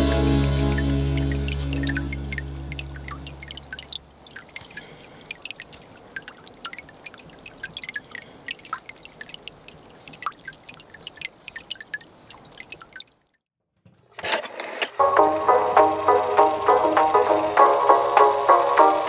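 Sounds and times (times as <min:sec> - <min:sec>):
water drops dripping into creek: 0:00.6 - 0:13.4.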